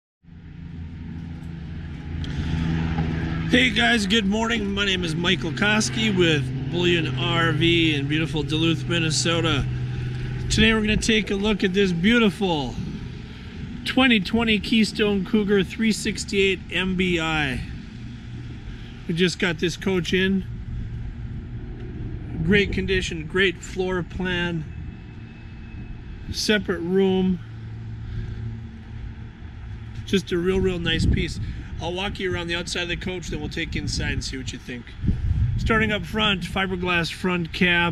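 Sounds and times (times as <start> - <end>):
low outdoor rumble: 0.2 - 37.9.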